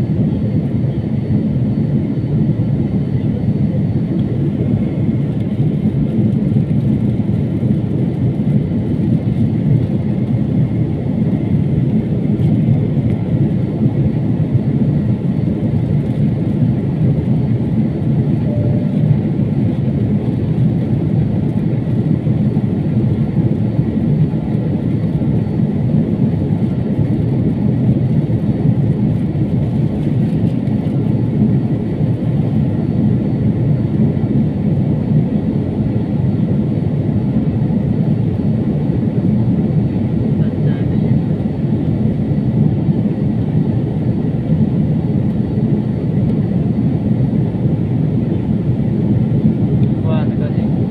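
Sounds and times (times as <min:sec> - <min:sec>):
airliner cabin engine rumble: 0:00.0 - 0:50.9.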